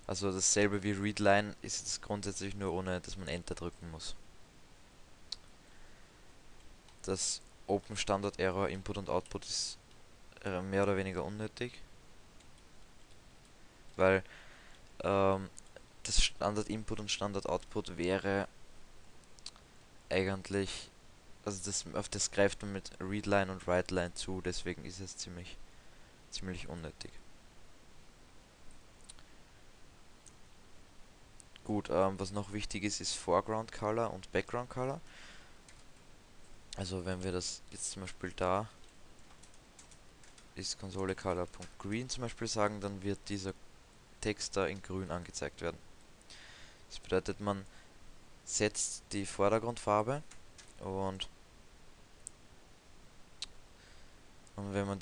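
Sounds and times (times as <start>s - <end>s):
room hiss: 0.0s - 55.0s.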